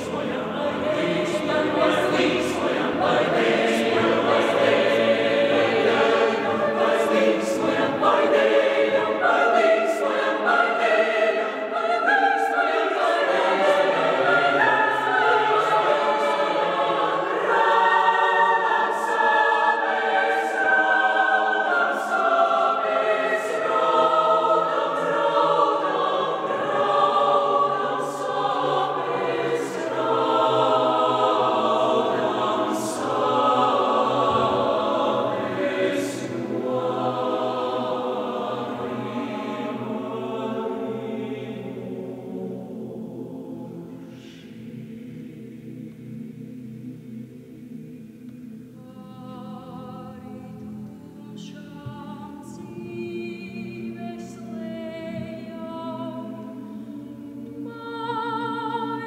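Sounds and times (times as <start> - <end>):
mixed choir singing: 0.0 - 59.0.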